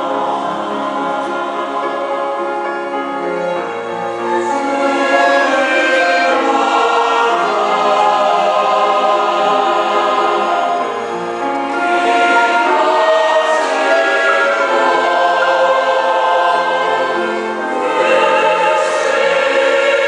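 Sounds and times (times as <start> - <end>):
mixed choir singing: 0.0 - 20.0.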